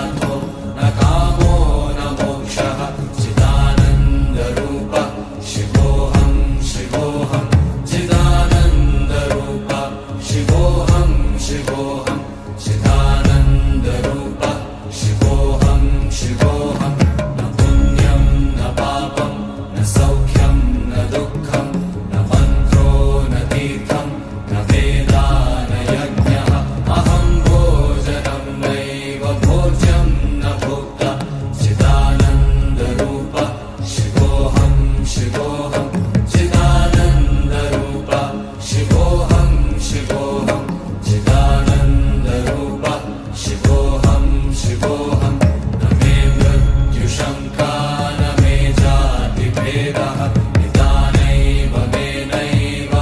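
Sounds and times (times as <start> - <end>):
music with heavy low beat: 0.0 - 4.9, 5.6 - 9.7, 10.3 - 14.3, 15.1 - 19.0, 19.6 - 38.2, 38.8 - 53.0
person chanting a hymn: 0.0 - 53.0.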